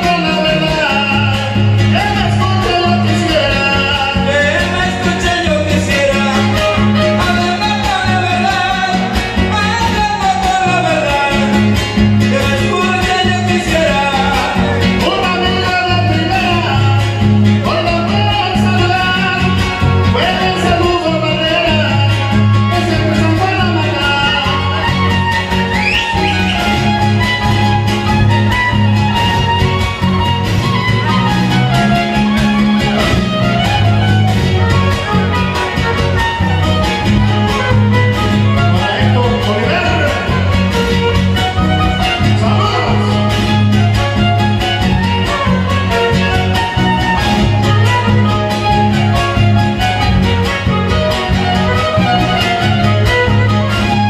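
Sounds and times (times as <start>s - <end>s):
person singing: 0.0s - 27.5s, 34.7s - 44.2s
fiddle melody: 0.0s - 54.0s
strummed and plucked guitars: 0.0s - 54.0s.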